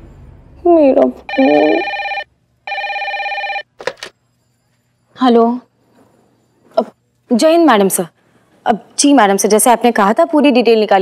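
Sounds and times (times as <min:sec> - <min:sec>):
desk telephone ringing: 0:01.3 - 0:04.1.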